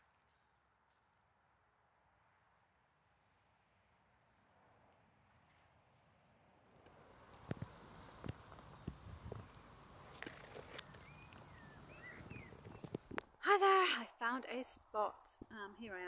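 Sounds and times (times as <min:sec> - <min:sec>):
low wind rumble: 0:06.5 - 0:13.2
bird chirping: 0:08.6 - 0:13.2.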